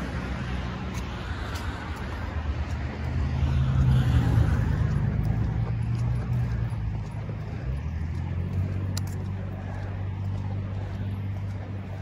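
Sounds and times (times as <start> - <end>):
traffic rumble: 0.0 - 12.0.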